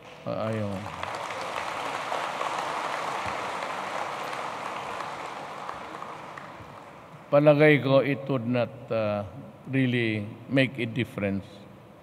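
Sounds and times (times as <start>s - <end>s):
audience applauding: 0.0s - 7.2s.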